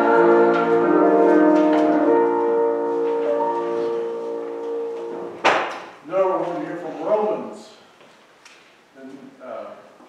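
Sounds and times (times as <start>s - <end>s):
church organ chords: 0.0s - 5.4s.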